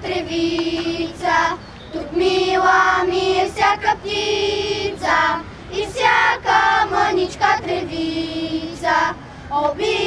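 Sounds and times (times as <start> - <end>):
children singing together: 0.0 - 10.0.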